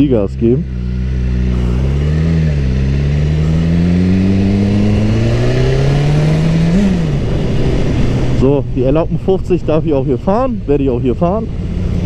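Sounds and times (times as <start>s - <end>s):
motorcycle engine accelerating: 0.0s - 12.0s.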